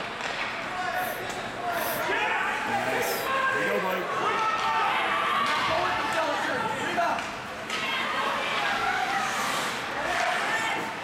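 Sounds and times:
ice rink noise: 0.0s - 11.0s
spectators shouting and cheering: 0.6s - 11.0s.

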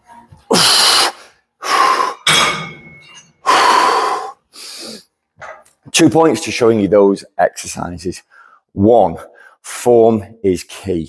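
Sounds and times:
man breathing hard: 0.5s - 2.3s, 3.4s - 5.1s.

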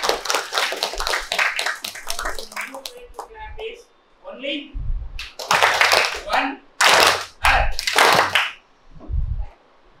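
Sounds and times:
audience applauding: 0.0s - 3.2s, 5.2s - 8.6s.

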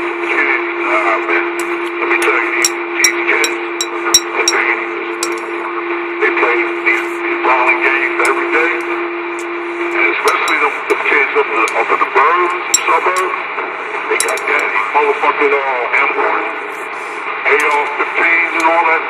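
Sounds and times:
radio static: 0.0s - 19.0s
warbling radio voices: 0.2s - 19.0s.

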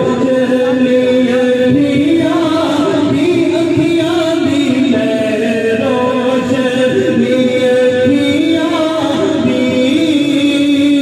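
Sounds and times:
unaccompanied devotional chanting: 0.0s - 11.0s.

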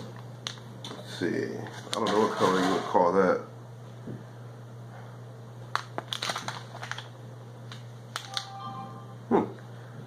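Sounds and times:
steady low hum: 0.0s - 10.0s
plastic packaging crinkling: 5.7s - 8.5s.

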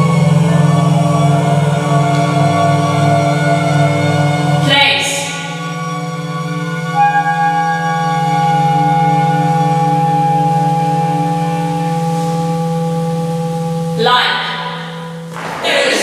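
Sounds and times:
clarinet and strings chamber music: 0.0s - 14.0s.

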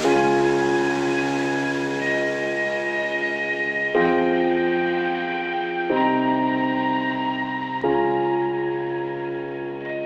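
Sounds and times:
slow gentle background music: 0.0s - 10.0s.

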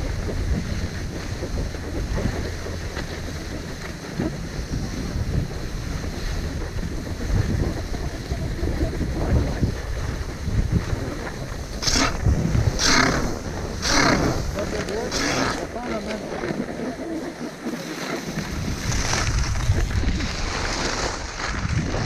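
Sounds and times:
skis scraping on snow: 0.0s - 22.0s
skis sliding over snow: 0.0s - 22.0s
wind buffeting microphone: 0.0s - 22.0s.

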